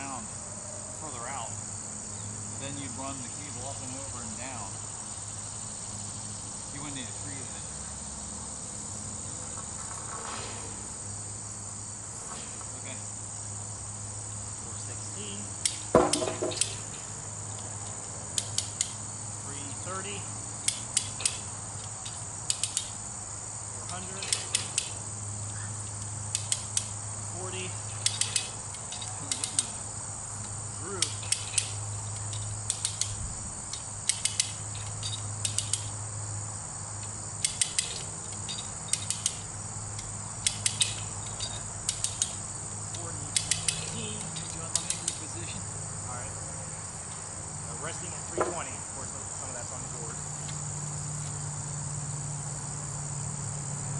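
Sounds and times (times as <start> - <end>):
insects chirring: 0.0 - 53.9
metallic clank: 15.6 - 17.1
winch ratchet clicking: 19.8 - 23.0, 23.8 - 27.0, 27.9 - 36.0, 37.0 - 45.6.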